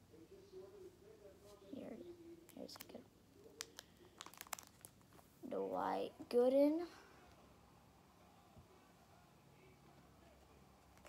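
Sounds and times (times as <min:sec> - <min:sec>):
plastic sleeves crinkling: 0:02.5 - 0:05.4.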